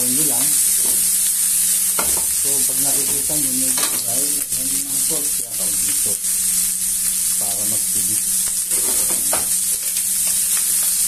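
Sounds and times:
chicken sizzling in oil: 0.0 - 11.0.

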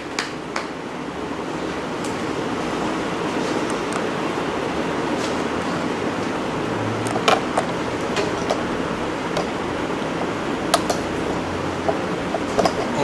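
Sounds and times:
room noise: 0.0 - 13.0
sharp clicks and knocks: 10.2 - 11.1, 11.8 - 13.0.

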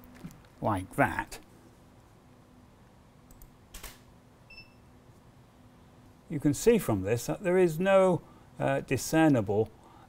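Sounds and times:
steady low hum: 0.0 - 10.0
camera shutter click: 3.7 - 4.1.

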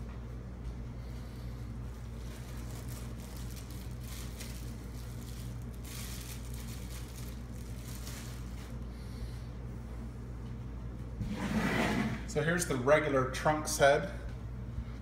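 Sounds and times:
steady low hum: 0.0 - 15.0
plastic wrapping crinkling: 1.8 - 8.8.

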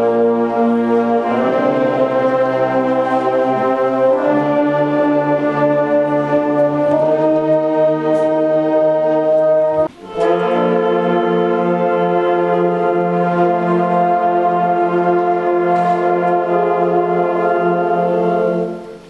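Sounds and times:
concert band playing held chords: 0.0 - 19.0.

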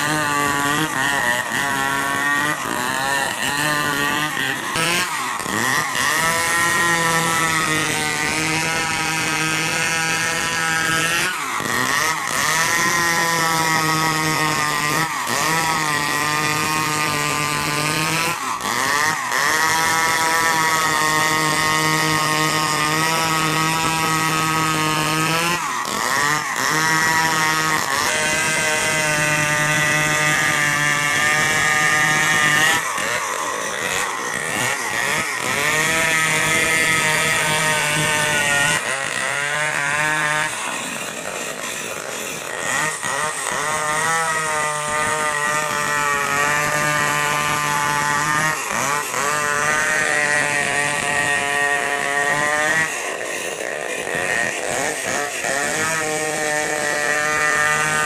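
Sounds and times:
chainsaw cutting through log: 0.0 - 58.0.

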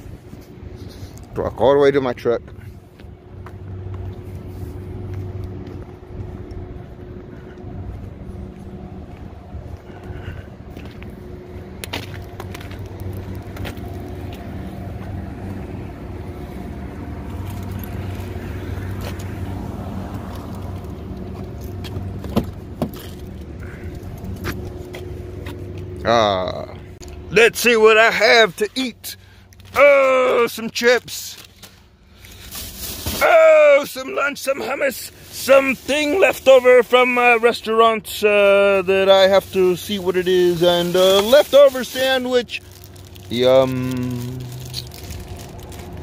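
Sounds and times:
low engine hum: 0.0 - 46.0.

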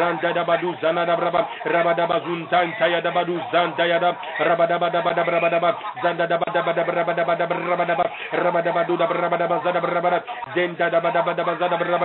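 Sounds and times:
man praying over telephone: 0.0 - 12.0.

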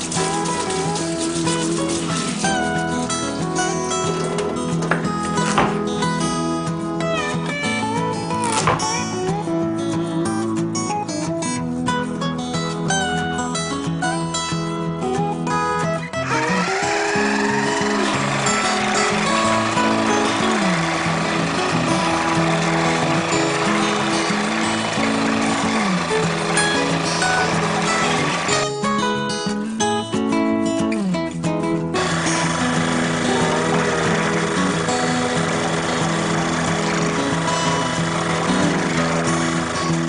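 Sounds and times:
food processor motor running: 0.0 - 2.6, 16.2 - 28.7, 32.0 - 40.0
background music: 0.0 - 40.0.

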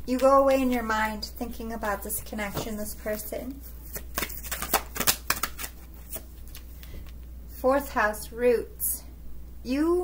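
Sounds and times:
cards being shuffled: 1.8 - 7.2.

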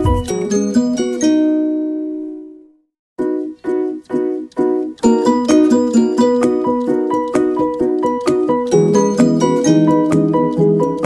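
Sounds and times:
background music plucked chords: 0.0 - 2.6.

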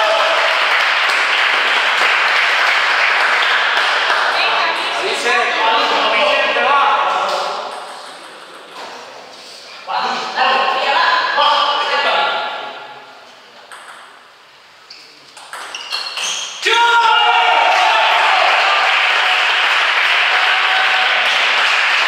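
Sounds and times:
people shouting and cheering: 0.0 - 0.8, 16.6 - 22.0.

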